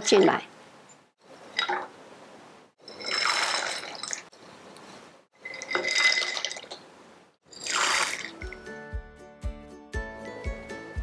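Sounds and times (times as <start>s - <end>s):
ingredients splashing into water: 7.6s - 8.6s.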